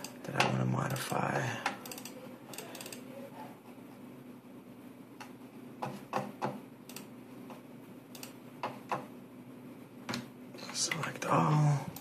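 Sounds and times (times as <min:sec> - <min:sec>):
computer mouse clicks: 0:00.0 - 0:03.0, 0:06.2 - 0:09.0
faint steady hum: 0:00.0 - 0:12.0.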